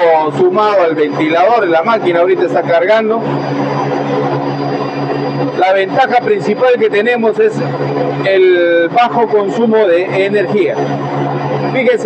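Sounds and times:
air compressor hum: 0.0s - 12.0s
cooling fan noise: 0.0s - 12.0s.

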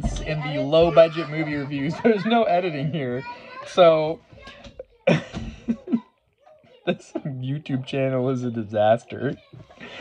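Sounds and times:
man laughing and coughing: 5.0s - 6.0s.

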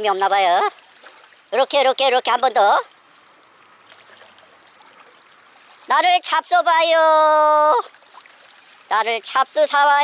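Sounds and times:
sea water lapping on rocks: 0.0s - 6.2s, 7.8s - 9.5s.

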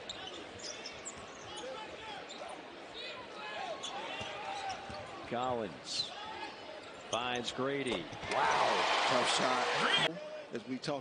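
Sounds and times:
sneaker squeaks: 0.0s - 2.6s, 3.8s - 5.2s
arena crowd noise: 0.0s - 11.0s.

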